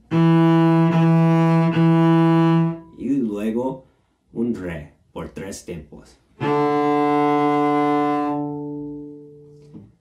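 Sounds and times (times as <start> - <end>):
cello long bowed note: 0.0 - 3.0, 6.4 - 9.8.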